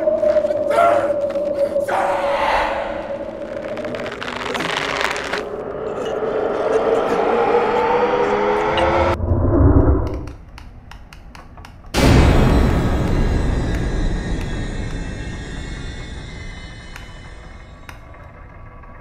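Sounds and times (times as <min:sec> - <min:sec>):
voice-like sound layer: 0:00.0 - 0:09.2
deep low rumble: 0:00.0 - 0:10.3
loud sudden hit: 0:12.0 - 0:17.8.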